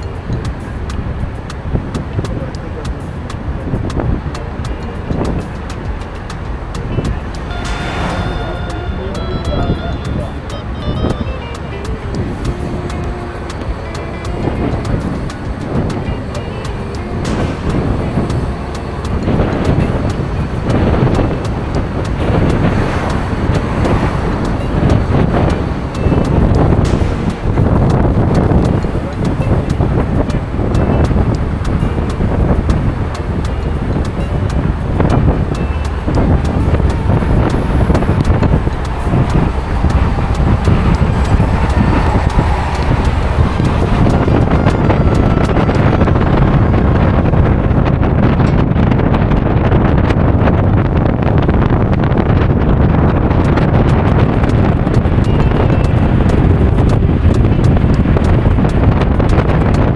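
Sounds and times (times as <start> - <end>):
car interior road noise: 0.0 - 59.9
wind gusts on microphone: 0.0 - 59.9.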